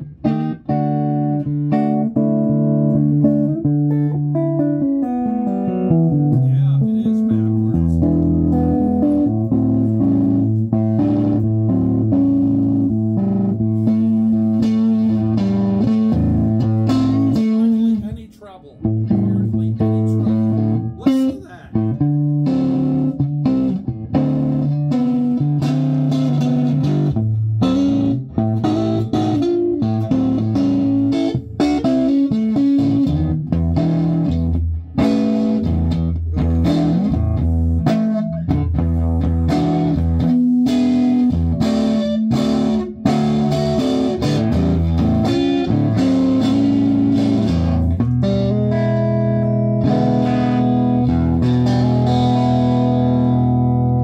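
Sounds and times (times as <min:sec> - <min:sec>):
electric guitar through amplifier: 0:00.0 - 0:54.0.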